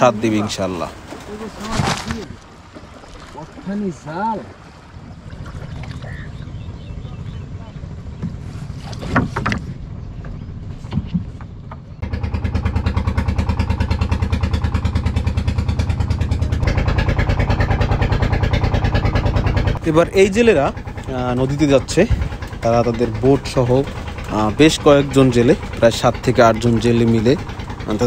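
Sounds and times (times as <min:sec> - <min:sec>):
boat engine running: 0:00.0 - 0:28.0.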